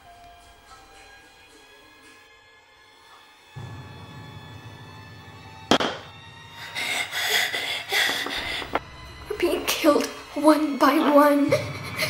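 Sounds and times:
sudden loud bang: 0:03.6 - 0:06.3
low drone: 0:03.6 - 0:10.3.

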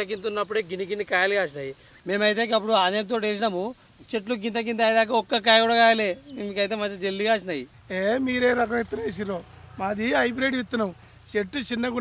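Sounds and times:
high-pitched insect drone: 0:00.0 - 0:12.0.

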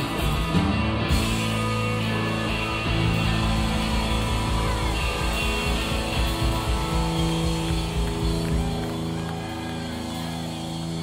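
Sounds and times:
electric guitar and bass chord: 0:00.0 - 0:11.0
drum beat: 0:02.5 - 0:09.7.

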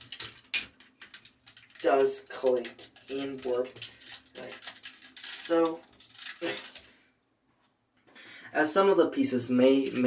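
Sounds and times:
plastic toy parts clicking: 0:00.0 - 0:06.9.

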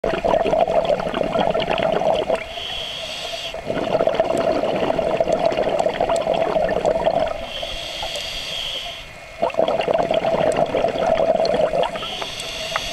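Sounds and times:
bubbling exhaust underwater: 0:00.0 - 0:12.9
hissing regulator inhale: 0:02.4 - 0:04.7, 0:07.3 - 0:09.2, 0:11.2 - 0:12.9.

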